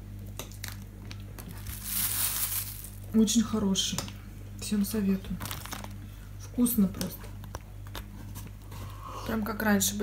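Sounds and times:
steady low hum: 0.0s - 10.0s
plastic bag crinkling: 0.6s - 3.3s, 5.2s - 6.0s.

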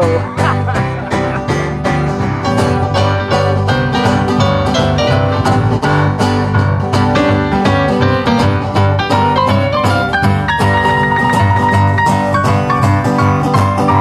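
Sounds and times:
bass guitar line: 0.0s - 14.0s
cajon beat: 0.0s - 14.0s
electric piano solo: 0.0s - 14.0s
live rock band playing: 0.0s - 14.0s.

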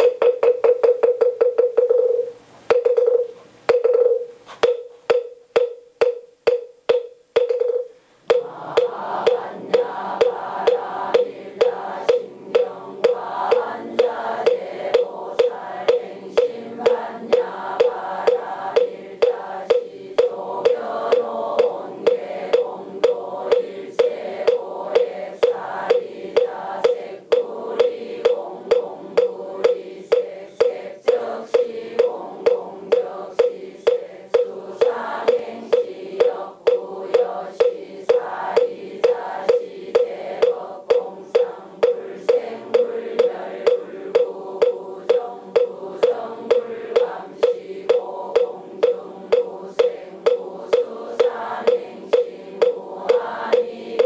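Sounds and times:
wooden fish knocks: 0.0s - 54.0s
congregation chanting in unison: 8.3s - 54.0s.

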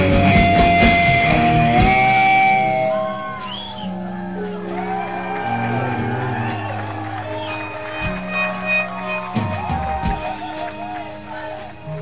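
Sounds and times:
drumming: 0.0s - 3.8s, 4.4s - 12.0s.

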